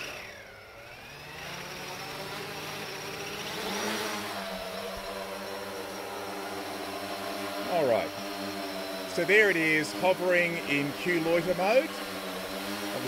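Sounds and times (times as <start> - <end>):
drone propellers whining: 0.0 - 13.0.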